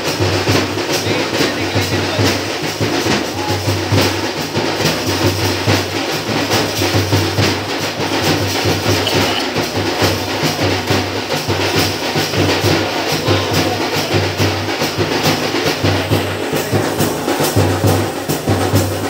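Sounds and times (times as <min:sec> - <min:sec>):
drum-led music fast beat: 0:00.0 - 0:19.0.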